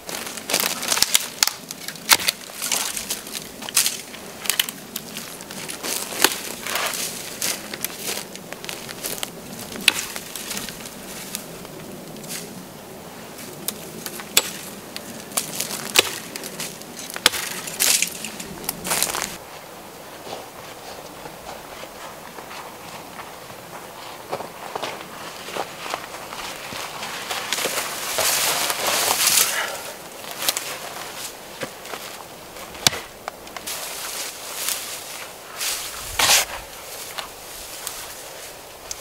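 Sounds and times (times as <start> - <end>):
twigs cracking: 0.0 - 12.6, 13.3 - 19.4, 24.9 - 39.0
pine needles rustling: 0.0 - 39.0.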